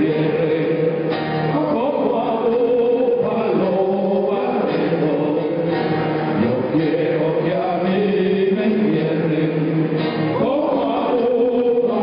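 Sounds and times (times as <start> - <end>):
acoustic guitars: 0.0 - 12.0
person singing wordless melody: 0.0 - 12.0.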